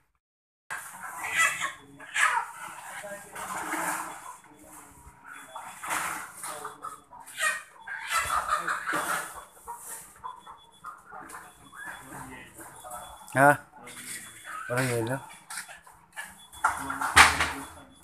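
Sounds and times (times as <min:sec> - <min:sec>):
hens clucking and squawking: 0:00.7 - 0:18.0.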